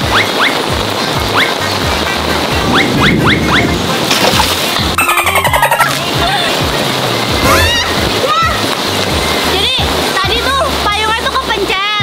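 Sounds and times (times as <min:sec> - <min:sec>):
heavy rain splashing: 0:00.0 - 0:12.0
music: 0:00.0 - 0:12.0
high voice: 0:05.0 - 0:06.4.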